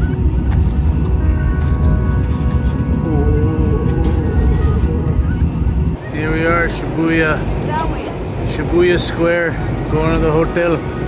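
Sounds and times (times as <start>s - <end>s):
train cabin rumble: 0.0s - 10.6s
street noise: 0.0s - 11.0s
wind on microphone: 0.0s - 11.0s
man talking: 6.0s - 7.5s, 8.4s - 10.9s.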